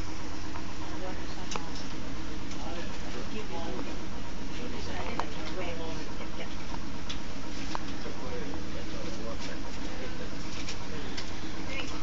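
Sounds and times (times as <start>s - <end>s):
background hiss and rumble: 0.0s - 12.0s.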